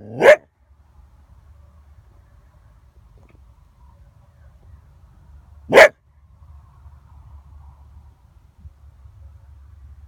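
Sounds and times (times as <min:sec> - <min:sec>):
coyote barking: 0:05.7 - 0:06.0.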